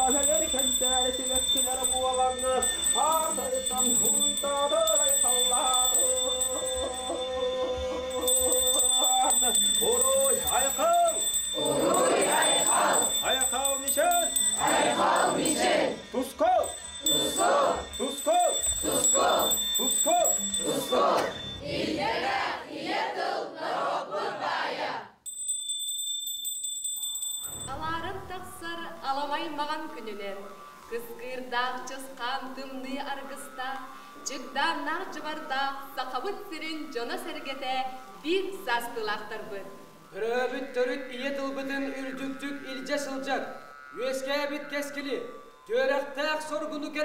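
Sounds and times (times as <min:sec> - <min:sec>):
man chanting: 0:00.0 - 0:19.1, 0:40.1 - 0:47.0.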